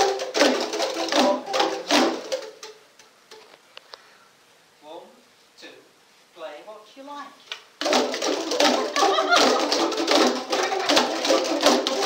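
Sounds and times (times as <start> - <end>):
hand percussion group playing: 0.0 - 3.5, 7.8 - 12.0.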